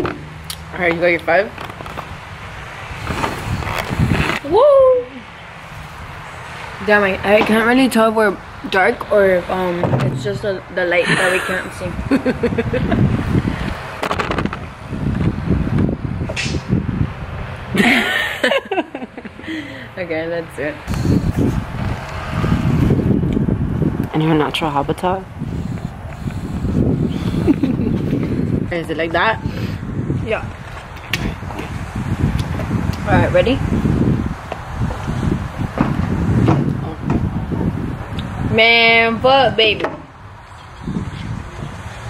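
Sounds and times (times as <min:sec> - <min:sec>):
low rumbling: 0:00.0 - 0:41.8
wind buffeting microphone: 0:00.0 - 0:42.0.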